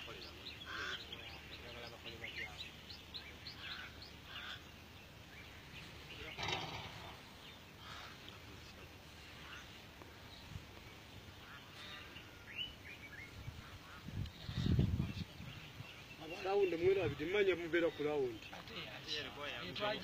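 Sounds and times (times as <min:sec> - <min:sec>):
birds chirping: 0:00.0 - 0:20.0
faint distant voices: 0:00.0 - 0:20.0.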